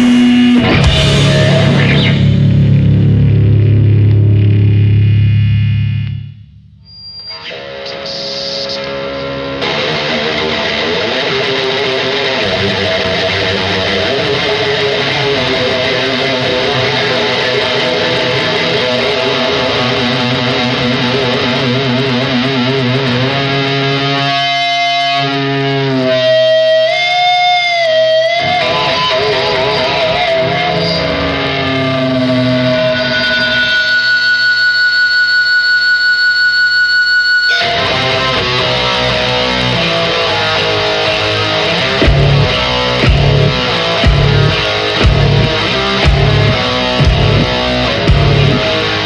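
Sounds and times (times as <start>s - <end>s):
electric guitar through effects: 0.0s - 49.0s
loud distorted guitar riff: 0.0s - 49.0s.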